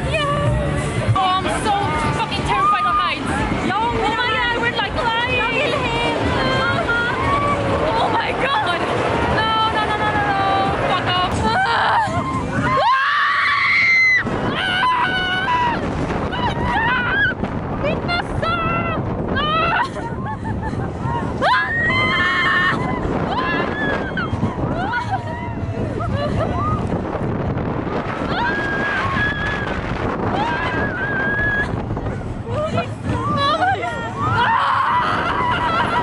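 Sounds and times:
roller coaster rushing noise: 0.0 - 36.0
wind on microphone: 0.0 - 36.0
people screaming: 6.4 - 8.0, 11.4 - 17.4, 18.3 - 26.9, 27.9 - 36.0.

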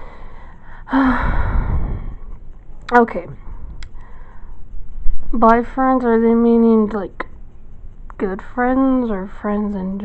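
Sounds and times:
woman sighing: 0.9 - 2.1.

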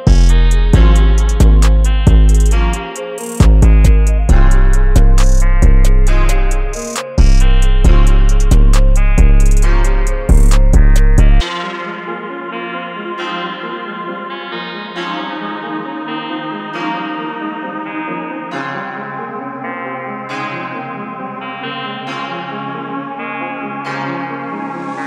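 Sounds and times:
looping plucked melody: 0.0 - 12.0.

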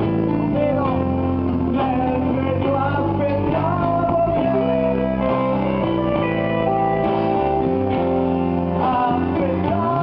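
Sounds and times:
electric guitar strumming: 0.0 - 10.0
live band playing: 0.0 - 10.0.

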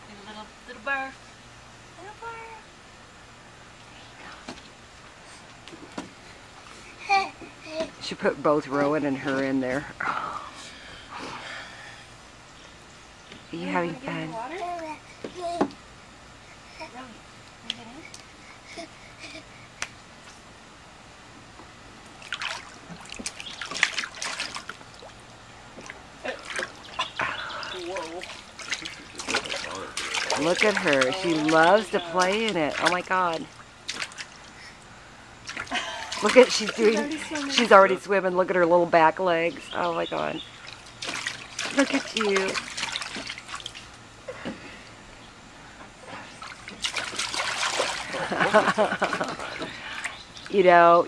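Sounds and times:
baby splashing in water: 22.2 - 25.2, 25.8 - 34.4, 35.4 - 37.8, 40.6 - 43.9, 46.4 - 50.2
hands splashing in water: 25.8 - 33.0.

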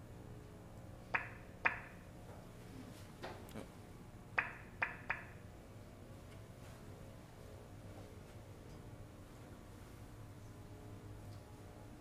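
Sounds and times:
faint room hum: 0.0 - 12.0
sharp knocks: 1.1 - 2.0, 4.4 - 5.4.

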